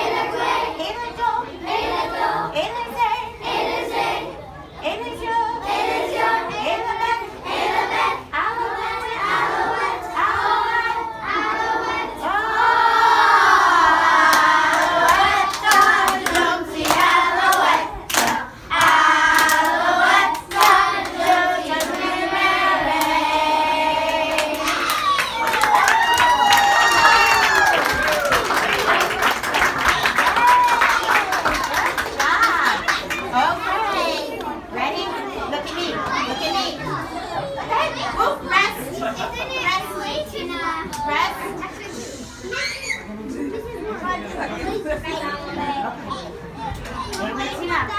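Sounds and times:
young children chattering: 4.1 - 7.2, 28.5 - 47.9
children singing together: 5.1 - 25.4.

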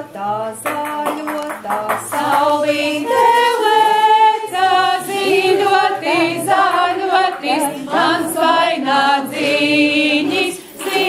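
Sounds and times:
women singing without instruments: 0.0 - 11.0.

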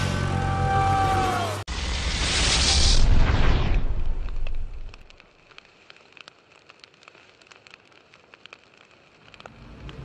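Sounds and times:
fire crackling pops: 1.7 - 10.0.

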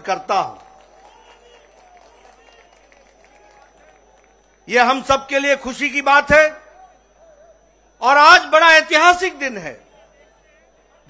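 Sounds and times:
high-pitched whine: 0.0 - 11.0
indistinct crowd voices: 6.6 - 8.0, 9.8 - 11.0.

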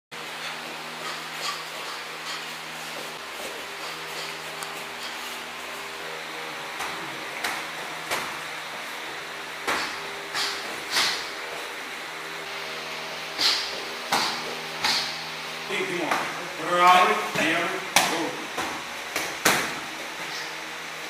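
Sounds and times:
steady hum: 0.2 - 21.0
gloved punches and kicks landing: 13.4 - 15.2, 17.4 - 19.9.

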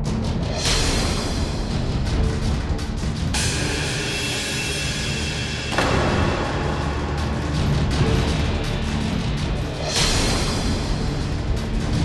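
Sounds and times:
low rumbling drums: 0.0 - 12.0.

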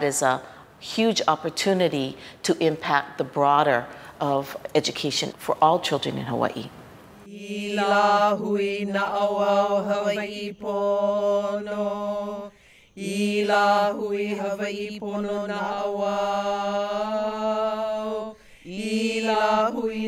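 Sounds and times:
person chanting: 7.3 - 20.0.

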